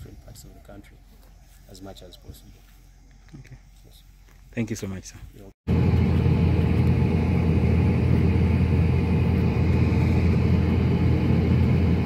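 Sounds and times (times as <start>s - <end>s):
combine harvester engine rumble: 5.7s - 12.0s.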